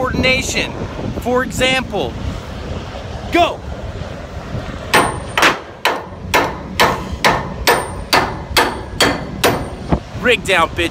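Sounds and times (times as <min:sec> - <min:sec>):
hammer striking steel pipe: 0:04.9 - 0:09.8.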